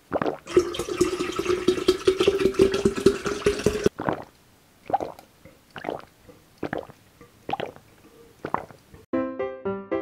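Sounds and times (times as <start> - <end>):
person gulping a drink: 0.0 - 9.0.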